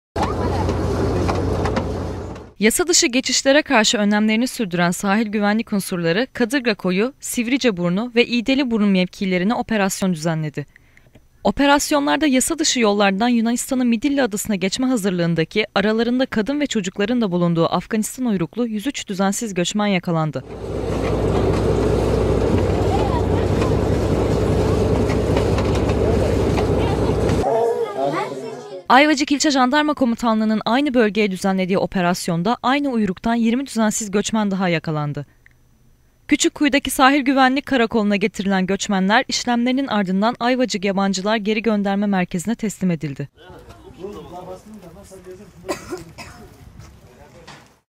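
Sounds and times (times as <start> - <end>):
crowd voices: 0.2 - 1.2, 22.5 - 28.9
boat engine running: 0.2 - 2.6, 20.4 - 27.5.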